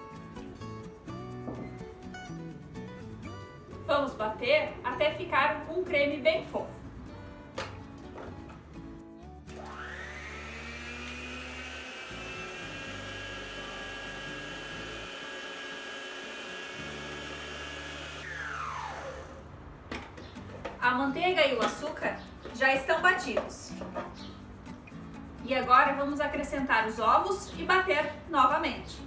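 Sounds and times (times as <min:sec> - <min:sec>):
stand mixer motor whine: 0:09.5 - 0:19.4.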